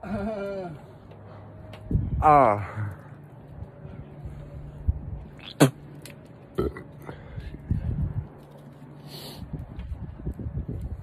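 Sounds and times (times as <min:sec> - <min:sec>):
person making burp-like groans: 0:06.5 - 0:07.2.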